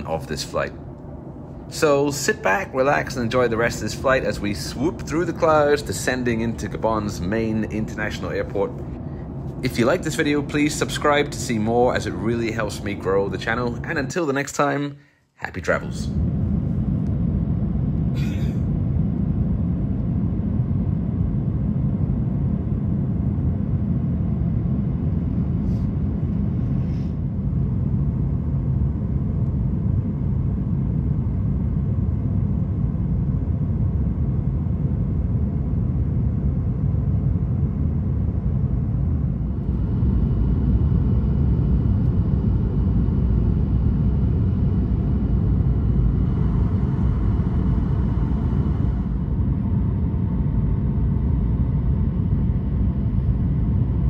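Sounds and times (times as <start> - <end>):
airplane cabin engine rumble: 0.0 - 14.7, 15.4 - 54.0.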